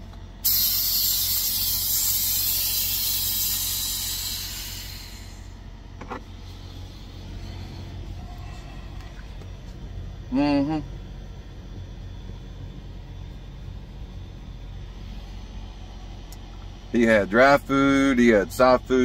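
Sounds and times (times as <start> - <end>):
truck low hum: 0.0 - 19.0
compressed air hissing: 0.4 - 5.7.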